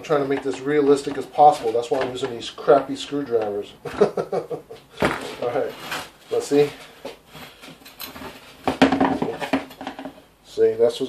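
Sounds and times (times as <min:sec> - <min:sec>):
clattering knocks: 0:08.1 - 0:10.2.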